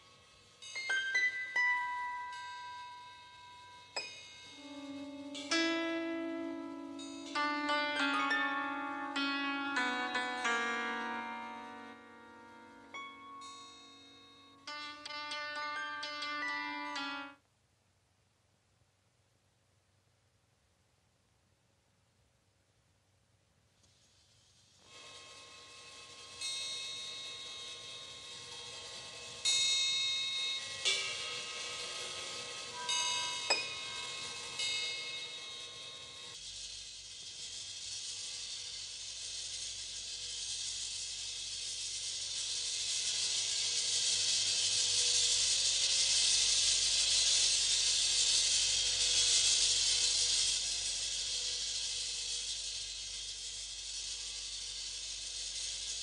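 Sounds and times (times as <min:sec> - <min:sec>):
steady hissing noise: 0:00.0 - 0:56.0
bells ringing: 0:26.2 - 0:36.4.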